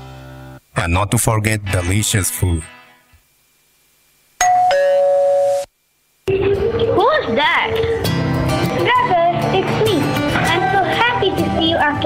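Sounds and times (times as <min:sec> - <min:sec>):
ding-dong doorbell chime: 0:04.4 - 0:05.6.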